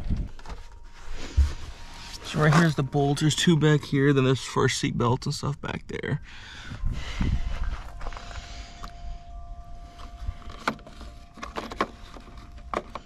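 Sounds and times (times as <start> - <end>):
faint steady tone: 0.0 - 13.0
camera handling rumble: 10.0 - 13.0.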